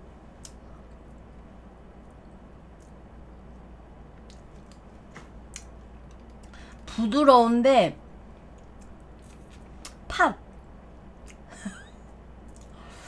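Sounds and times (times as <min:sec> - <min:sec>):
low room hum: 0:00.0 - 0:13.0
soft eating sounds: 0:00.1 - 0:06.9, 0:08.2 - 0:13.0.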